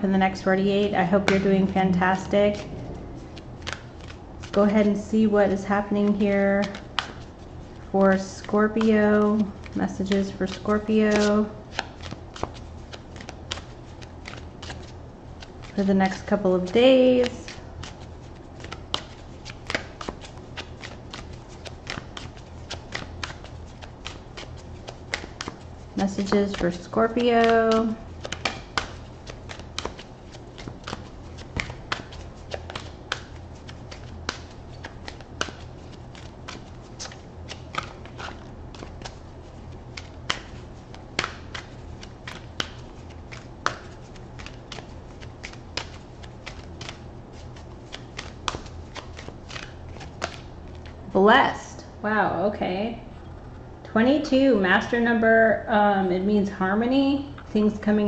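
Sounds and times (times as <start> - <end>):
faint low hum: 0.0 - 58.0
cards being shuffled: 1.0 - 51.0.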